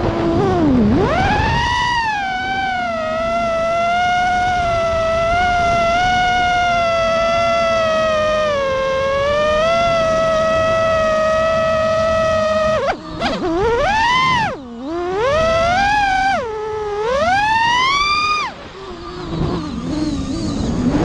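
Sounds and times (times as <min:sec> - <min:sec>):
drone motors whining: 0:00.0 - 0:21.0.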